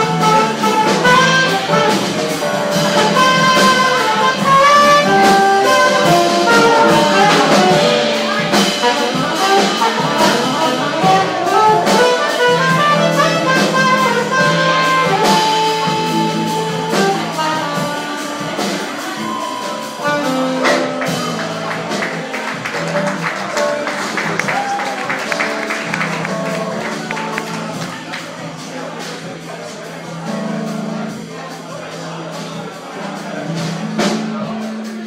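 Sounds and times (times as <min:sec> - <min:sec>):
horn melody: 0:00.0 - 0:29.1
steady bass: 0:00.0 - 0:31.3
live jazz band playing: 0:00.0 - 0:35.0.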